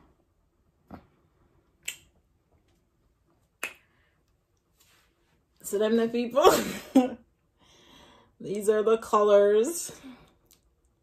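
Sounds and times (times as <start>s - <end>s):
finger snaps: 1.8s - 2.2s, 3.6s - 4.0s.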